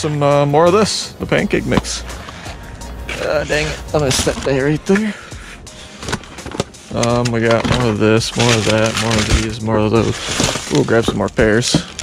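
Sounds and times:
rustling boxes and plastic bags: 0.2s - 12.0s.

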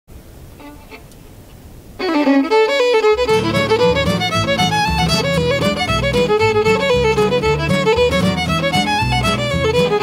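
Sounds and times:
low room rumble: 0.1s - 10.0s.

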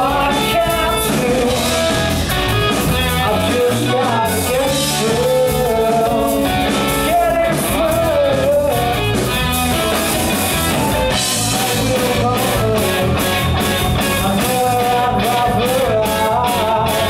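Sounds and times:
man singing lead: 0.0s - 17.0s
rock band playing live: 0.0s - 17.0s.

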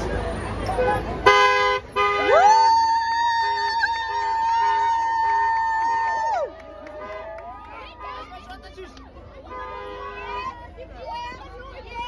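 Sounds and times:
car horn blasts: 0.8s - 2.4s, 9.4s - 10.6s.

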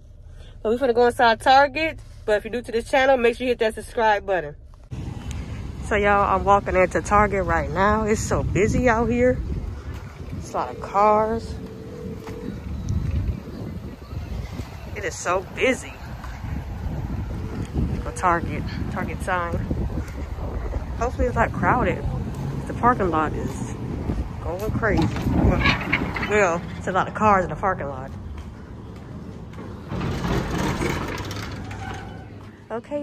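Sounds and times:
low hum: 0.0s - 32.6s
wind buffeting microphone: 4.9s - 32.7s.

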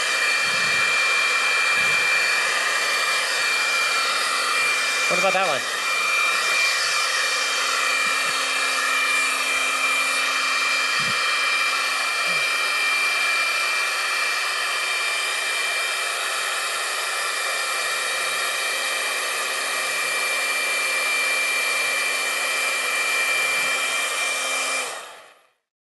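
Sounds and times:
leaf blower running: 0.0s - 25.5s.

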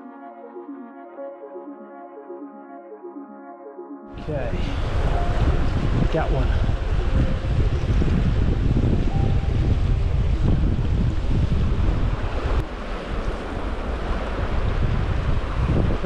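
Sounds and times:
fast shallow river rushing: 4.2s - 16.0s
wind buffeting microphone: 4.2s - 16.0s.

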